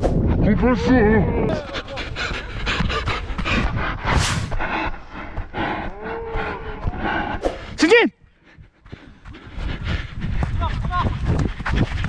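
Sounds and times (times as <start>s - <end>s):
slowed-down voices moaning: 0.6s - 7.5s.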